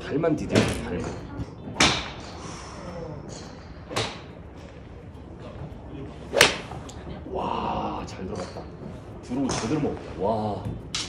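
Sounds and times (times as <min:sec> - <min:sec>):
golf club striking ball: 0:06.3 - 0:07.0.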